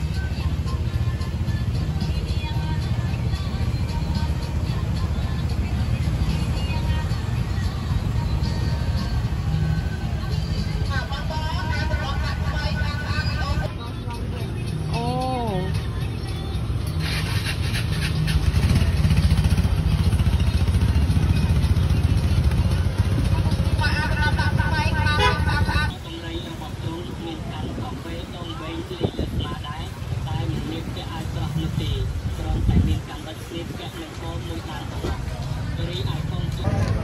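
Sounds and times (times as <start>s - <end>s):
motor vehicle engine running: 0.0s - 37.0s
people talking: 10.6s - 16.0s, 23.2s - 37.0s.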